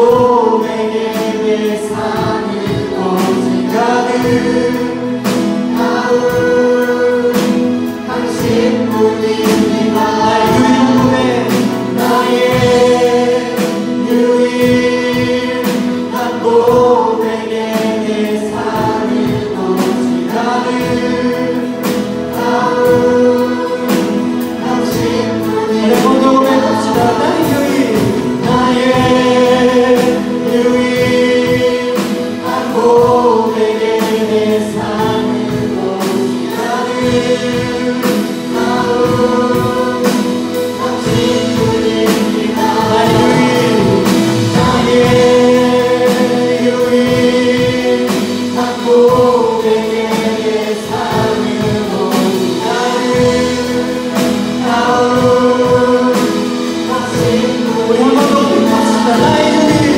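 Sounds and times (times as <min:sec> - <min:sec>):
group singing worship song: 0:00.0 - 0:59.9
strummed guitar: 0:00.0 - 0:59.9.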